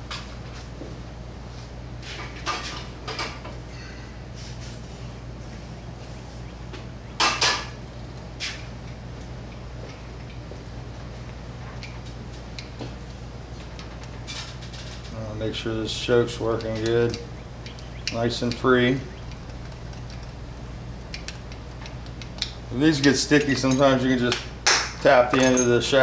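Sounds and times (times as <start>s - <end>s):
steady low hum: 0.0s - 26.0s
metal parts clinking and rattling: 21.2s - 24.2s, 25.2s - 26.0s.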